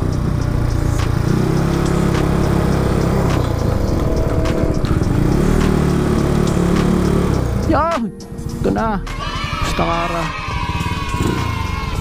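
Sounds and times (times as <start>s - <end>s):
scooter engine running: 0.0s - 12.0s
wind and road noise: 0.0s - 12.0s.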